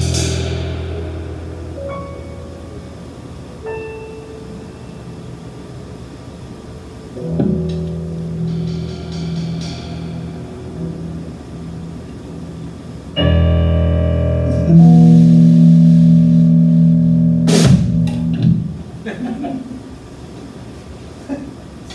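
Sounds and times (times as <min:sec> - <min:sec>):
full band held chord: 0:00.0 - 0:05.1, 0:07.2 - 0:19.0
electric keyboard chords: 0:00.0 - 0:19.1.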